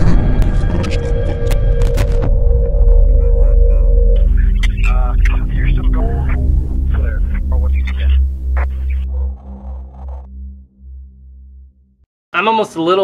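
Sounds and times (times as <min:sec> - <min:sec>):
deep droning hum: 0:00.0 - 0:12.1
clipped voice fragments: 0:04.2 - 0:09.1.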